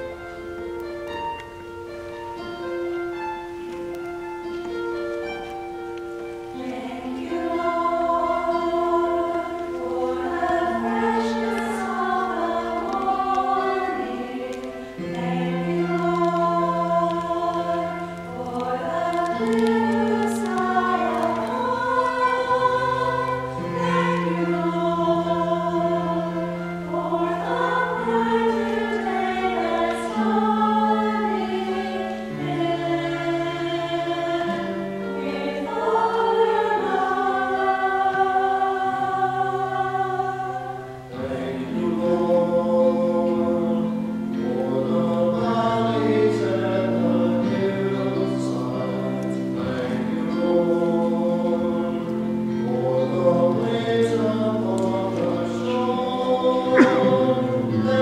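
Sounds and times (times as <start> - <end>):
voices singing a slow hymn: 6.2 - 58.0.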